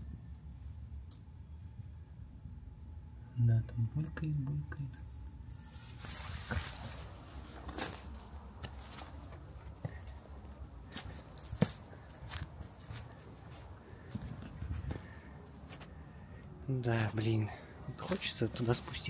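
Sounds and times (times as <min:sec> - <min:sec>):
footsteps on leaf-covered concrete: 0:06.0 - 0:10.2, 0:10.9 - 0:15.1.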